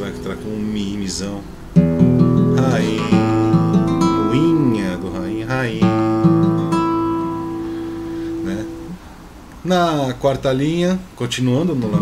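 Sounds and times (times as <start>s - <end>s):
guitar strumming chords: 0.0s - 9.1s
man singing: 2.5s - 6.6s.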